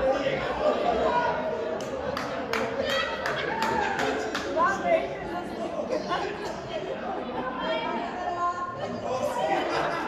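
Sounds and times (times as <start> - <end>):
people talking over one another: 0.0 - 10.0.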